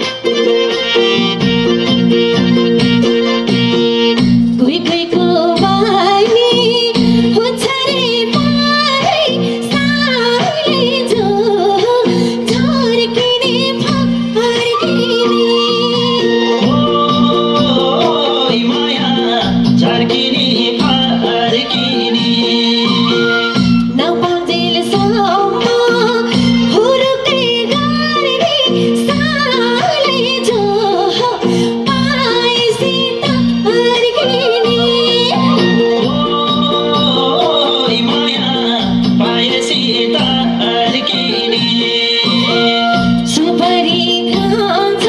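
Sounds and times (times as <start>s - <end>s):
band playing through speakers: 0.0s - 45.0s
woman singing: 4.1s - 45.0s.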